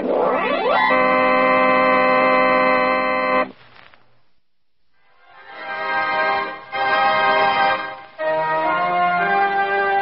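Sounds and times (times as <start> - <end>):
organ holding a chord: 0.7 - 3.5, 5.5 - 10.0.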